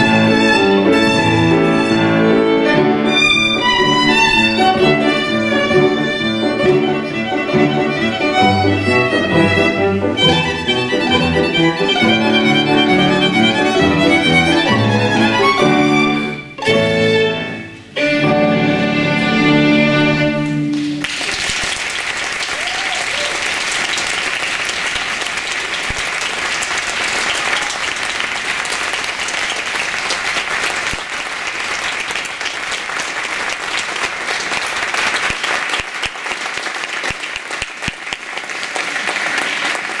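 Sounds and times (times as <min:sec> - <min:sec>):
audience applause: 0:20.7 - 0:40.0.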